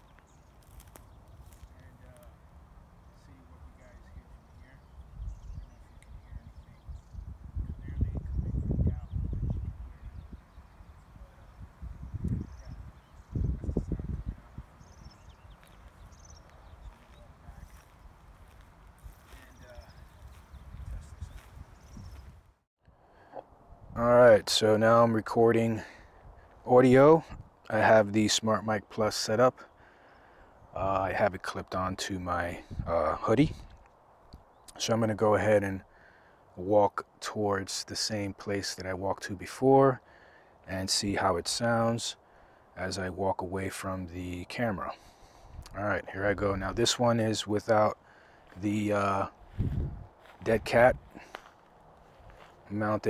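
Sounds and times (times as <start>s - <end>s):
distant man's voice: 1.6s - 10.4s, 11.0s - 11.6s, 16.6s - 17.9s, 19.2s - 20.2s, 23.9s - 26.0s, 26.6s - 29.7s, 30.7s - 33.7s, 45.7s - 49.4s, 50.3s - 51.3s, 52.6s - 53.0s
wind buffeting microphone: 4.1s - 22.6s, 23.5s - 24.2s, 26.0s - 27.6s, 32.6s - 34.5s, 45.0s - 46.9s, 48.4s - 51.4s.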